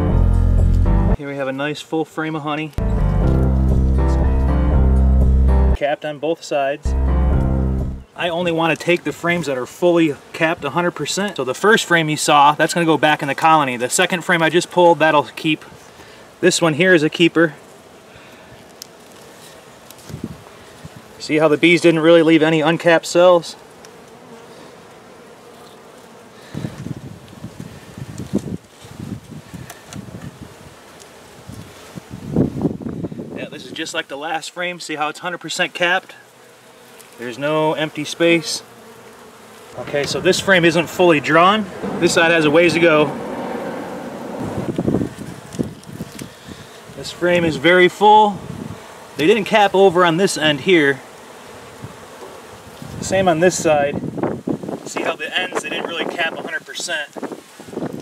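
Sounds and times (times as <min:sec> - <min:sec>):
honey bees buzzing: 0:00.0 - 0:01.2, 0:02.8 - 0:05.8, 0:06.8 - 0:58.0
hive tool scraping wooden frames: 0:08.2 - 0:32.1, 0:35.4 - 0:53.7.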